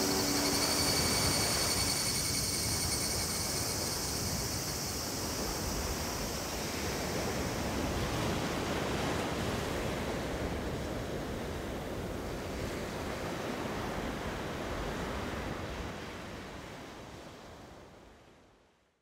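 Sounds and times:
sea surf washing: 0.0 - 12.0
wind: 0.0 - 19.0.

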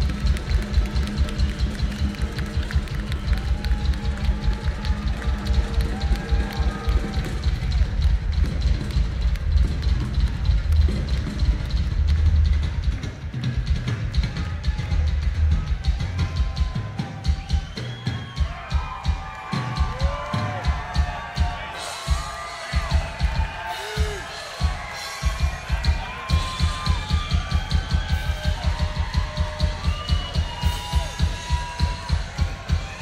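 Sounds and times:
fast bass drum beats: 0.0 - 33.0.

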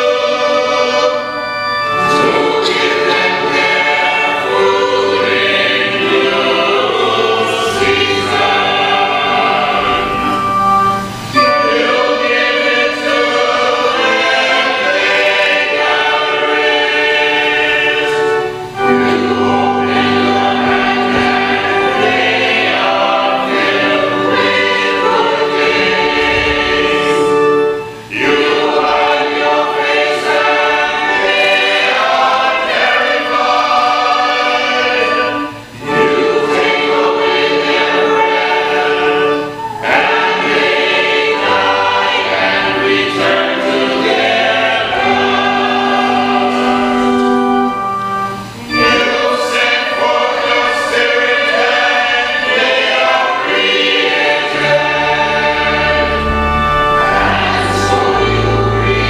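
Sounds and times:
church choir singing: 0.0 - 59.0.

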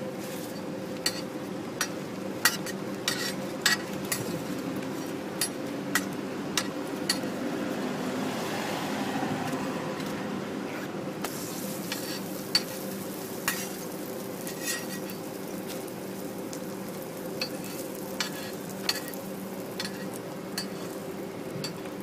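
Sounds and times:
pancake sizzling on a griddle: 0.0 - 7.3, 11.2 - 22.0
steady low hum: 9.1 - 22.0
metal spatula tapping griddle: 11.2 - 12.8, 13.4 - 13.7, 17.4 - 19.2, 19.8 - 21.0.

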